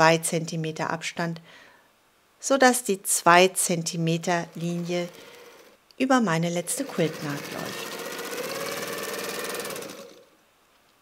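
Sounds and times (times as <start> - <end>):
sewing machine stitching: 4.2 - 5.8, 6.4 - 10.4.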